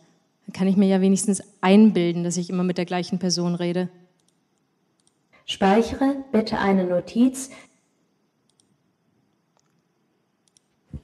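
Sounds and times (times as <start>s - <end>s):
computer mouse clicks: 4.2s - 5.3s, 8.4s - 8.8s, 9.4s - 11.0s.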